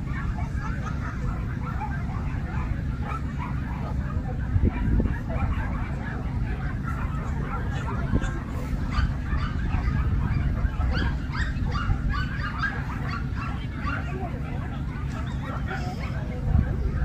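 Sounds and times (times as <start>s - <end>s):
dogs barking: 0.0s - 17.0s.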